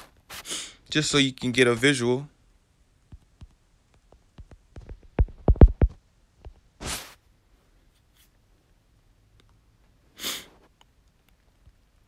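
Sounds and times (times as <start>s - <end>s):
person sniffing: 0.0s - 0.8s, 6.8s - 7.2s, 10.2s - 10.7s.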